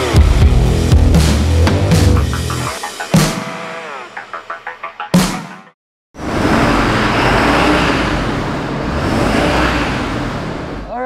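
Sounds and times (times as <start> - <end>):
diesel truck engine running: 6.2 - 11.0.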